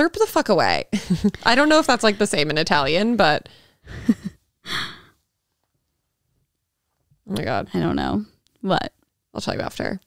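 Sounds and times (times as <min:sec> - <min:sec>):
woman sighing: 0:03.9 - 0:05.1.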